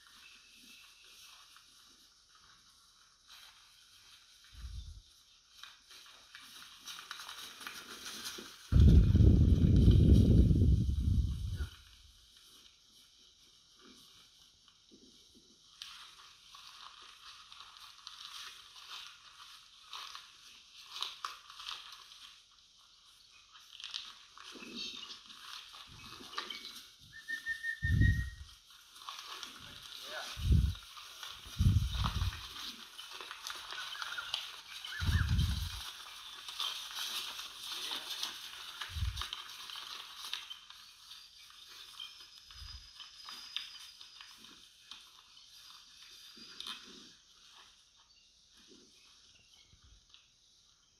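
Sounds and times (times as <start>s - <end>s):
bird chirps: 26.0s - 28.5s, 33.7s - 36.7s.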